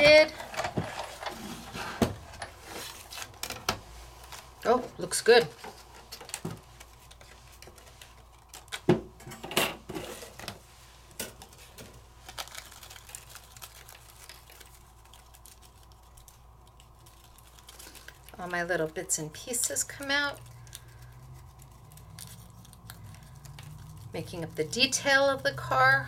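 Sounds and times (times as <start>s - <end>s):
paper rustling: 0.0s - 4.8s, 11.4s - 18.6s.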